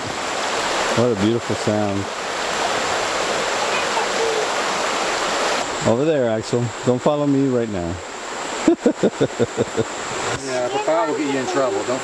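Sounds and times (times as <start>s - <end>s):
creek rushing over rocks: 0.0s - 12.0s.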